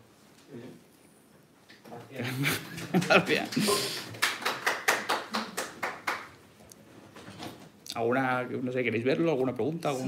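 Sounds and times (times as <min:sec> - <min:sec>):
small audience applauding: 0:03.0 - 0:06.4.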